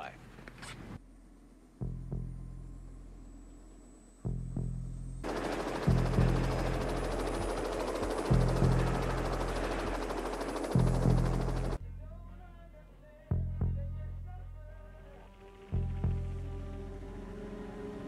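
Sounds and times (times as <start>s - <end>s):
low bass pulse: 1.0s - 3.5s, 4.2s - 5.3s, 5.9s - 12.0s, 15.8s - 17.2s
helicopter rotor and turbine: 1.1s - 11.8s.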